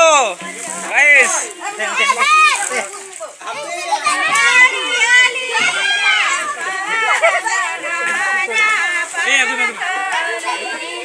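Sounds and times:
women and children talking: 0.0 - 11.0.

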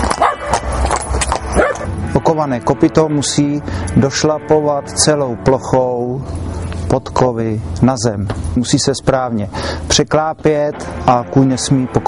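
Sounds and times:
horseshoes clattering on cobblestones: 0.0 - 2.0, 8.2 - 8.8.

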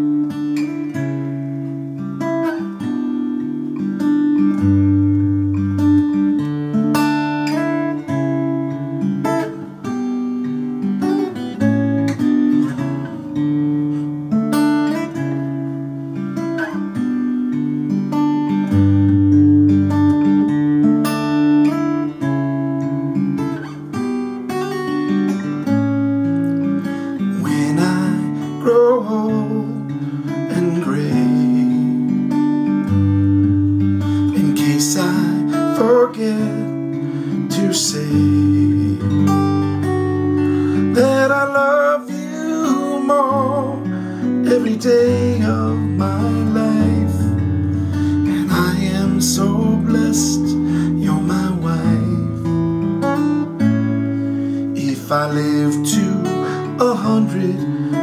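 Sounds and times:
acoustic guitar picked chords: 0.0 - 58.0.

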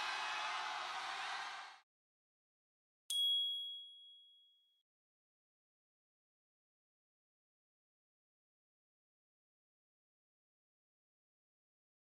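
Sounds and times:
bright ding: 3.1 - 4.7.

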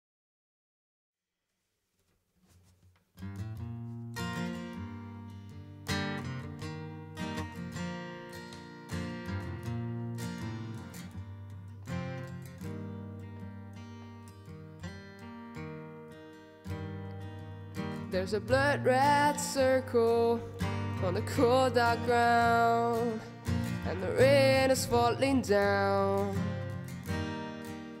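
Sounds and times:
acoustic guitar strumming chords: 3.2 - 28.0.

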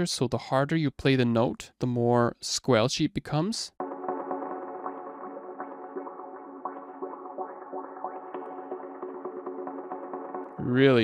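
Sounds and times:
sustained synth tone: 3.8 - 10.6
filtered synth plucks: 3.8 - 11.0.

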